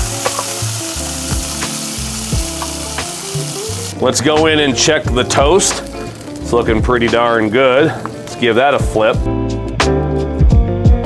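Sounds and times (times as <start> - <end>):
food sizzling on a griddle: 0.0 - 9.3
soft background music: 0.0 - 11.0.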